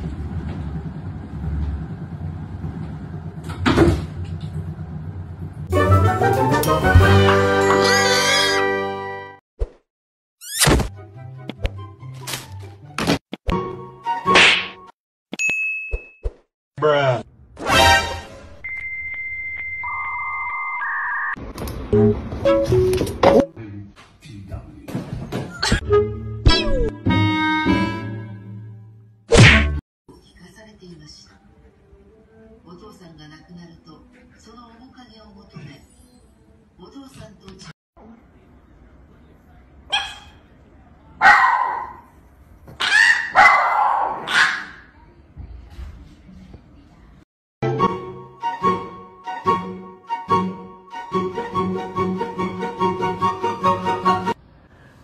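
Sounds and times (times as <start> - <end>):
exercise wheel rumbling: 0.0 - 5.7
clatter and thump on wooden floor: 2.7 - 4.7
loud whack: 10.6 - 10.9, 14.3 - 14.8, 29.3 - 29.8.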